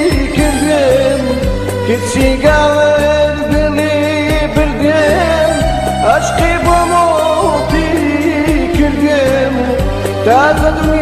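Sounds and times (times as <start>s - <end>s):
pop song with singing: 0.0s - 11.0s.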